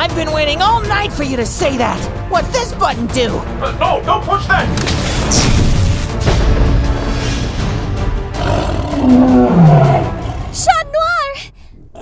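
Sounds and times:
voiced monster roar: 8.3s - 10.6s.

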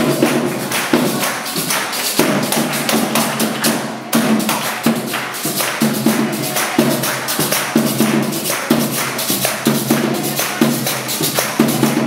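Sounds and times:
group clapping a beat: 0.0s - 12.0s.

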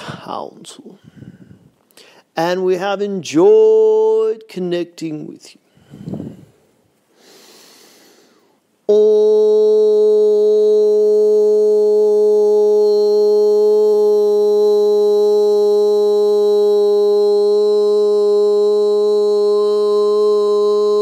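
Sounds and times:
man holding a sung note: 8.8s - 21.0s.

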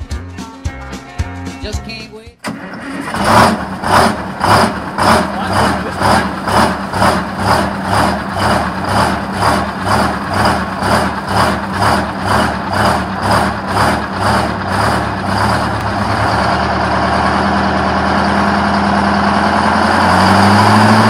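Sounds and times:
diesel bus engine running: 2.4s - 21.0s.

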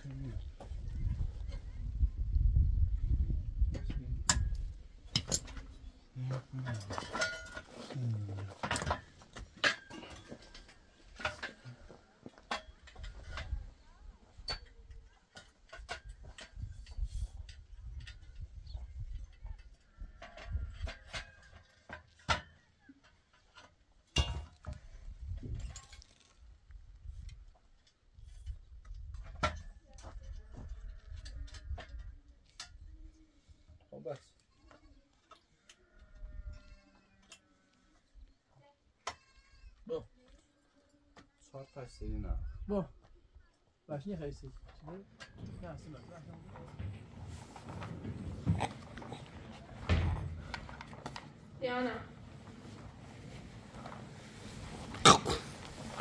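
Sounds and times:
livestock bleating: 35.8s - 37.7s, 39.1s - 39.8s.

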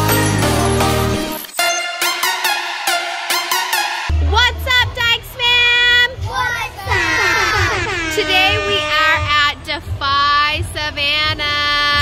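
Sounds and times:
low bass beat: 4.1s - 12.0s
children calling out: 6.6s - 8.5s.

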